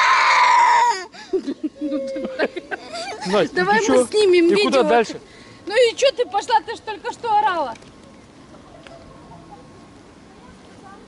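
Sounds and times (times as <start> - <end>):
girl crying wail: 0.0 - 3.2.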